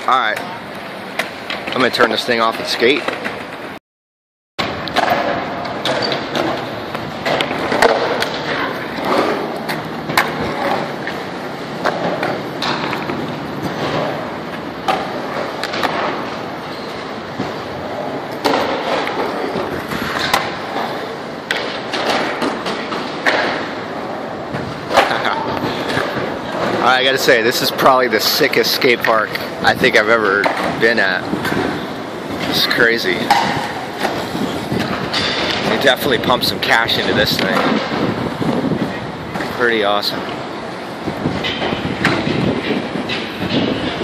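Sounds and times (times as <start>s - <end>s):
skateboard wheels rolling: 0.0s - 3.8s, 4.6s - 44.0s
skateboard clacks on concrete: 4.6s - 16.4s, 17.4s - 23.7s, 32.4s - 36.4s.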